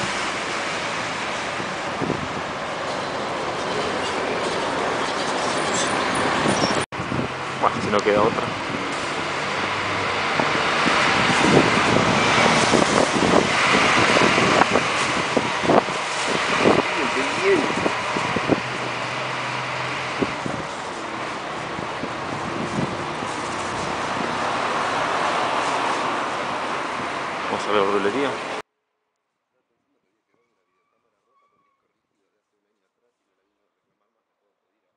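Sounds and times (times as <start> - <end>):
cars passing: 0.0 - 28.6.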